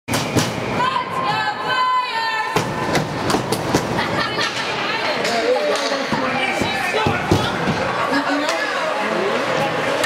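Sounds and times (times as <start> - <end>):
crowd shouting: 4.2 - 10.0.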